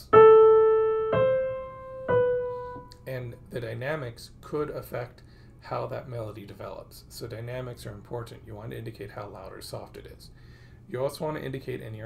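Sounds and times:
piano notes ringing: 0:00.0 - 0:03.2.

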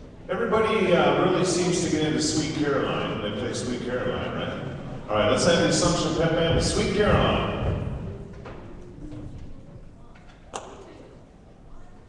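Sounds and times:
gymnasium background noise: 0:00.0 - 0:12.0.

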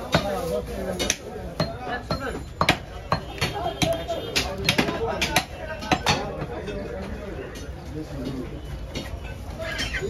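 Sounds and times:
people talking: 0:00.0 - 0:10.0
chopping on wooden block: 0:01.0 - 0:06.5.

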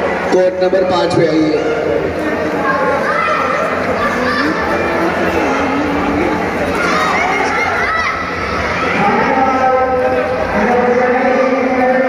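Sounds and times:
hall noise: 0:00.0 - 0:12.0.

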